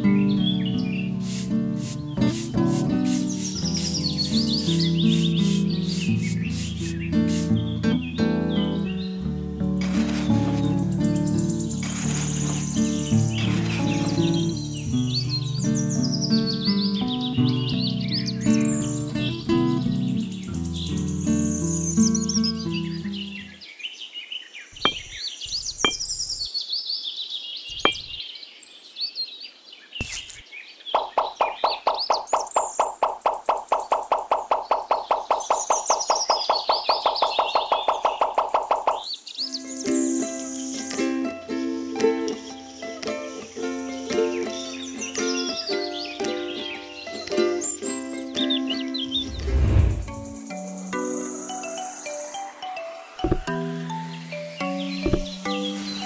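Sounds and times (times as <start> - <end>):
birds chirping: 0.0 - 40.9, 42.0 - 56.0
background music: 40.0 - 56.0.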